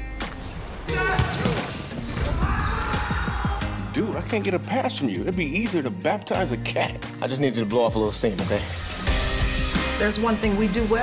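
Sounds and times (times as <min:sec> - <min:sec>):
sneakers squeaking: 0:01.0 - 0:03.0.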